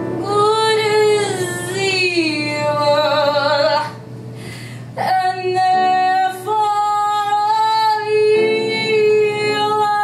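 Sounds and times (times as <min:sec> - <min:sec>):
woman singing into a microphone: 0:00.0 - 0:04.1, 0:04.9 - 0:10.0.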